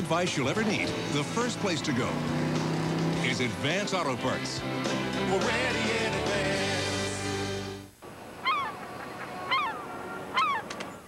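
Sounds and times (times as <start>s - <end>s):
commercial music: 0.0s - 7.9s
falling bird calls: 8.4s - 11.0s.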